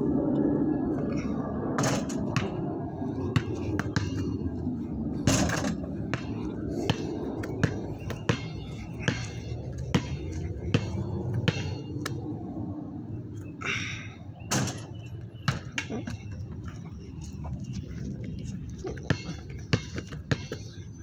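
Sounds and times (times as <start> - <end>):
basketball bouncing on concrete: 3.3 - 4.4, 5.3 - 12.2, 15.4 - 16.1, 19.0 - 20.8.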